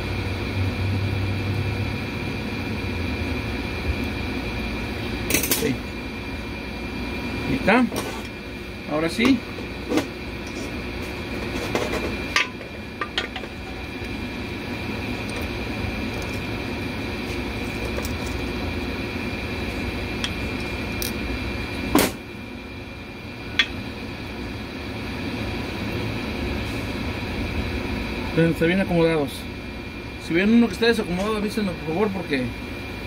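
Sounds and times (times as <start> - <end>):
steady background hum: 0.0 - 33.0.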